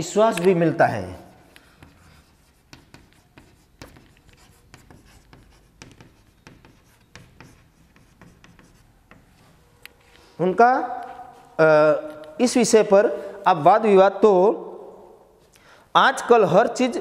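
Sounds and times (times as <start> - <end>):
chalk tapping and scratching: 0.3 - 9.7.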